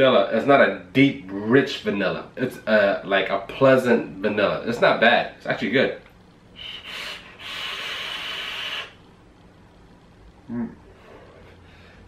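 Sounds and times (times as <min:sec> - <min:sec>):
electronic cigarette airflow hiss: 0:06.5 - 0:09.5.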